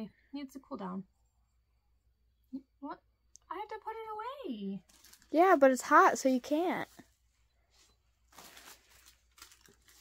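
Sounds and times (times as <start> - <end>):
plastic bag crinkling: 4.8 - 7.0, 8.2 - 10.0.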